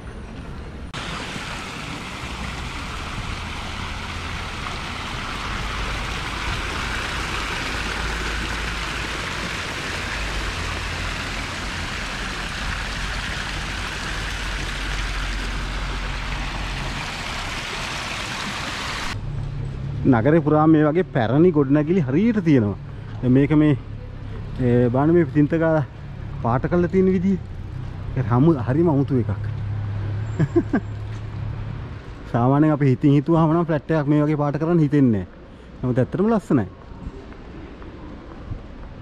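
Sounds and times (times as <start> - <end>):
fountain water splashing: 1.0 - 19.2.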